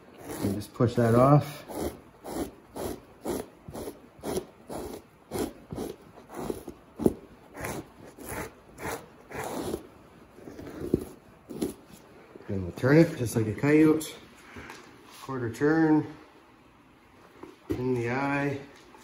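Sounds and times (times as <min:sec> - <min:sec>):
fleshing knife scraping hide: 0:00.0 - 0:12.1.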